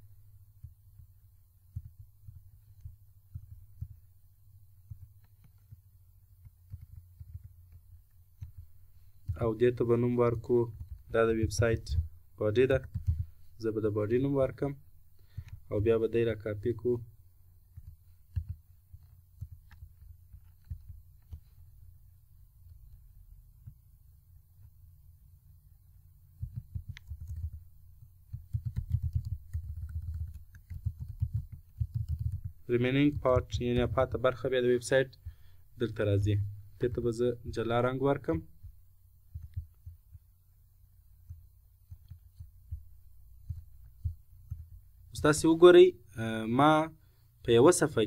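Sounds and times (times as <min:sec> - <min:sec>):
computer mouse clicks: 0:04.8 - 0:09.4, 0:15.2 - 0:15.6, 0:17.7 - 0:21.7, 0:26.4 - 0:34.0, 0:39.3 - 0:40.2.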